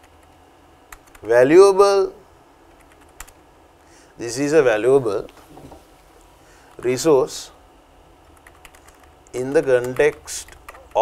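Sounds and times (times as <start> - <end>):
computer keyboard keystrokes: 0.0 - 1.2, 2.8 - 3.4, 8.4 - 9.1, 9.8 - 11.0.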